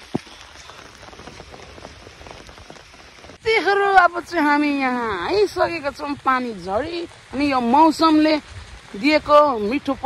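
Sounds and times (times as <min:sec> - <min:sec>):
rain pattering on an umbrella: 0:00.0 - 0:10.0.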